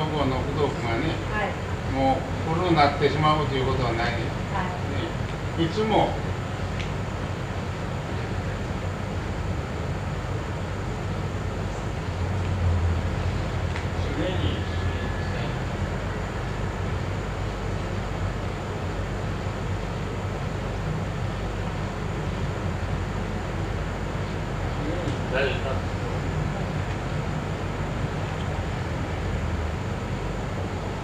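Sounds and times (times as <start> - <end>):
room hum and hiss: 0.0 - 31.0.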